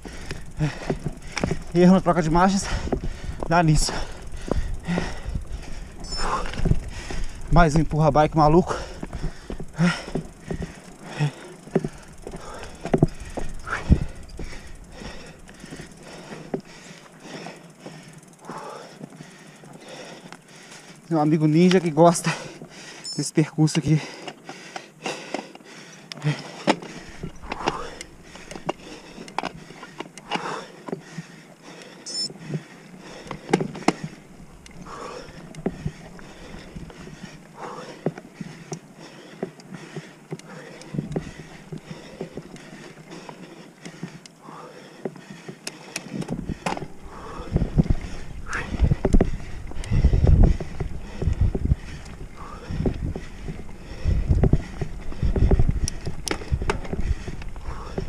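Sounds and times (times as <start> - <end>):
bike rattling over dirt: 0.0 - 58.0.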